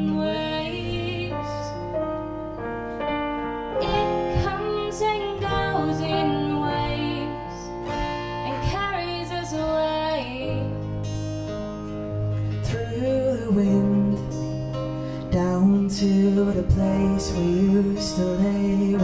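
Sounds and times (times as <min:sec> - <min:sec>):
woman singing: 0:00.0 - 0:02.0, 0:03.8 - 0:10.8
acoustic guitar strumming: 0:00.0 - 0:19.0
sustained backing chords: 0:00.0 - 0:19.0.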